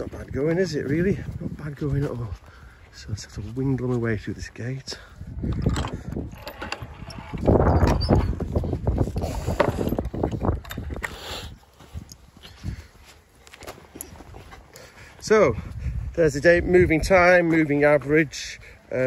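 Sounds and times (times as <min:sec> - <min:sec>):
footsteps: 0:00.0 - 0:07.3, 0:11.6 - 0:18.1
microphone handling noise: 0:05.2 - 0:12.9.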